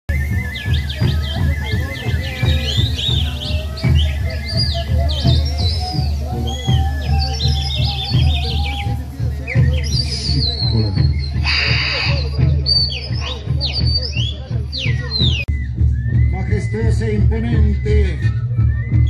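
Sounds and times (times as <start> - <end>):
chirping whistles: 0.1 - 19.0
wavering flute-like tone: 0.1 - 19.0.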